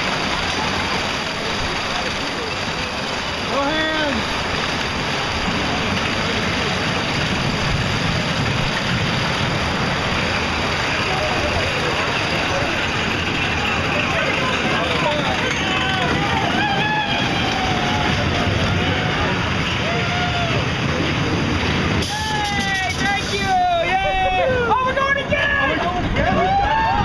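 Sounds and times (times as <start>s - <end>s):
roller coaster running on track: 0.0s - 27.0s
riders calling out: 1.4s - 4.4s, 10.7s - 27.0s.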